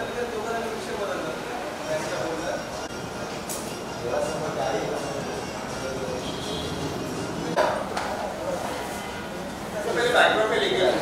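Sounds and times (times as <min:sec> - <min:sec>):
indistinct chatter: 0:00.0 - 0:11.0
room noise: 0:00.0 - 0:11.0.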